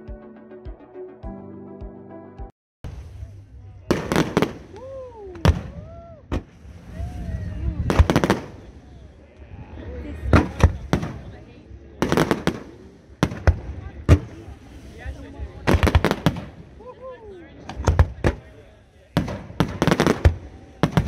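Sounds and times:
fireworks bangs: 0:02.8 - 0:09.4, 0:10.1 - 0:17.0, 0:17.6 - 0:21.0.

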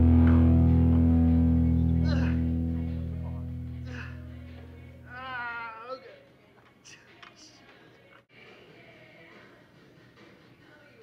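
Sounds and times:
man whining with strain: 0:02.0 - 0:02.6.

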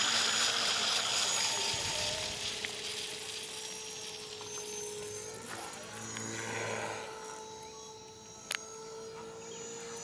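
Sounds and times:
model helicopter motor and rotor: 0:00.0 - 0:10.0.

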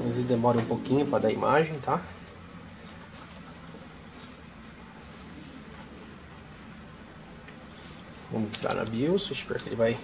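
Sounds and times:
computer fans humming: 0:00.0 - 0:10.0.

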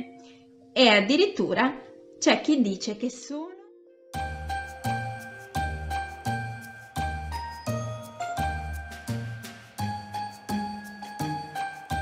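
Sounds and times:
jingling sleigh bells: 0:04.8 - 0:12.0.

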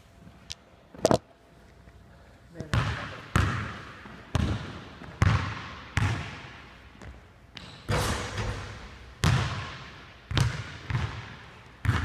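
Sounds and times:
basketball bouncing on hardwood floor: 0:04.3 - 0:06.4, 0:07.0 - 0:12.0.

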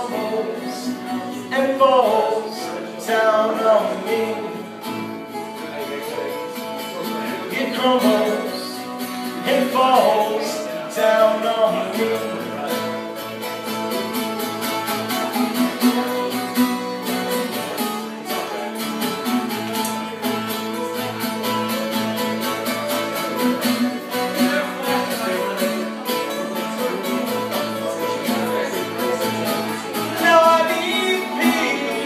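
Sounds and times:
person singing: 0:00.0 - 0:14.1, 0:15.0 - 0:32.0
acoustic guitars strumming: 0:00.0 - 0:32.0.

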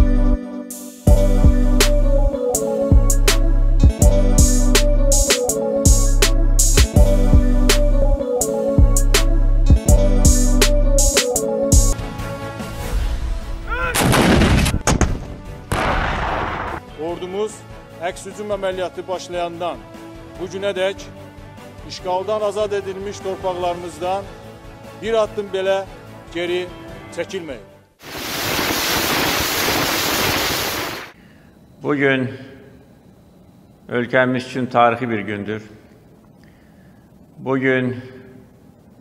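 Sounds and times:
artillery guns firing: 0:14.0 - 0:16.8
weapon fire rush: 0:15.7 - 0:16.8, 0:28.0 - 0:31.2.

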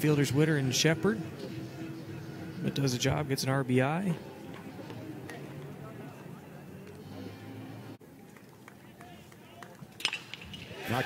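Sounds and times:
crowd murmur: 0:00.0 - 0:10.0.

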